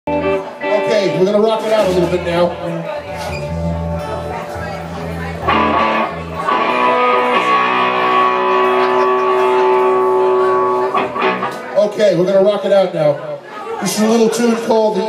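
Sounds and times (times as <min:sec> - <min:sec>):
electric bass notes: 0:00.1 - 0:11.8
electric guitar chord ringing: 0:00.1 - 0:11.8.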